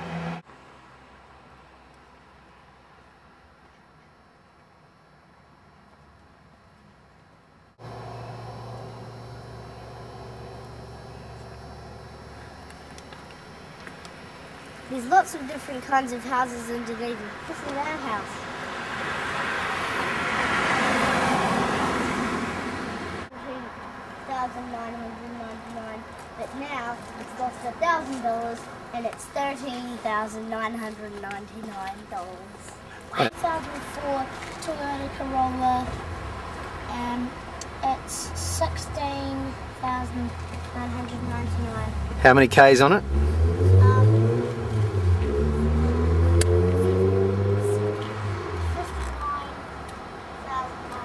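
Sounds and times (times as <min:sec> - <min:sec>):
car passing: 0:00.0 - 0:01.9, 0:07.7 - 0:25.3, 0:32.2 - 0:51.0
vehicle engine running: 0:07.8 - 0:18.0, 0:33.0 - 0:50.6.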